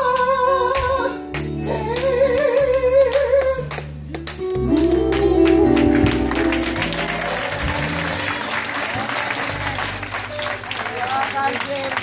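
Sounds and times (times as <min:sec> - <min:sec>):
low instrument notes: 0:04.4 - 0:10.7
congregation applauding: 0:04.8 - 0:12.0.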